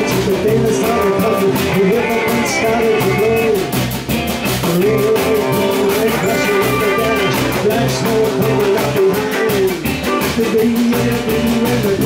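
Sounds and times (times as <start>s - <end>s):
bass guitar: 0.0s - 12.0s
drum kit: 0.0s - 12.0s
electric guitars: 0.0s - 12.0s.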